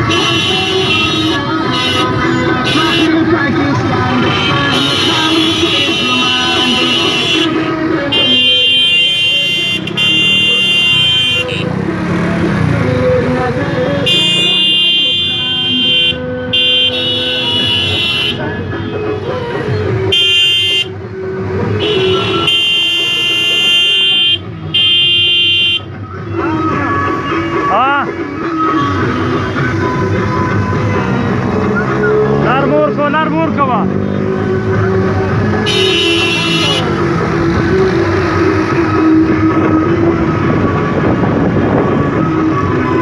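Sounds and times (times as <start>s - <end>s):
car horns blasting: 0.0s - 3.3s, 4.2s - 11.7s, 14.0s - 18.6s, 20.1s - 21.0s, 21.8s - 25.9s, 35.6s - 37.0s
vehicles running: 0.0s - 43.0s.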